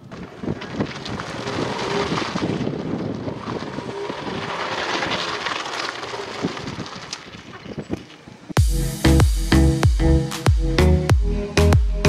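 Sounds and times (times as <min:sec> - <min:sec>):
wind noise on microphone: 0:00.0 - 0:09.8.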